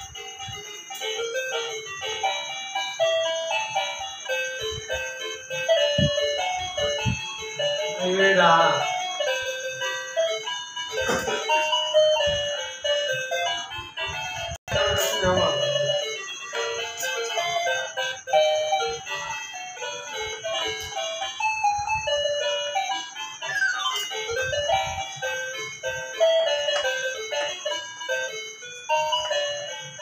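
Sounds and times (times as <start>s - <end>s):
toy electronic piano notes: 0.0s - 30.0s.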